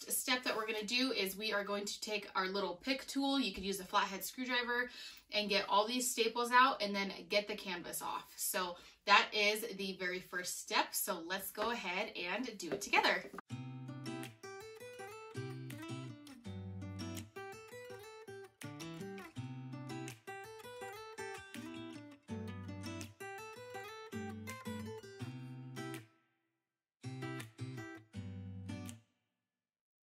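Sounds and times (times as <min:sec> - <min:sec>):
strummed acoustic guitar: 0:13.4 - 0:26.0, 0:27.0 - 0:29.0.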